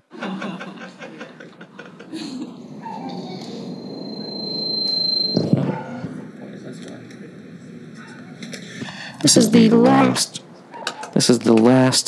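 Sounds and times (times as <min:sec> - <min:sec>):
high whistle-like tone: 0:02.7 - 0:06.2.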